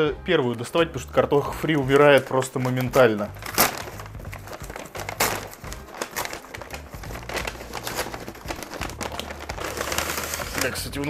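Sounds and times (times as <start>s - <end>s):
paper bag rustling and crinkling: 1.6s - 11.0s.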